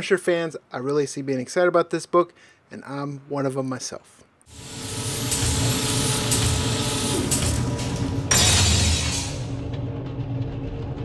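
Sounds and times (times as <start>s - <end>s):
mechanical whirring: 4.5s - 11.0s
low rumble: 8.6s - 11.0s.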